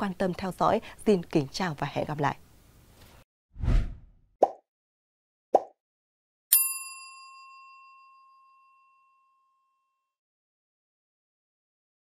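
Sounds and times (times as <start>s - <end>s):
bell-like ding: 6.5s - 10.0s.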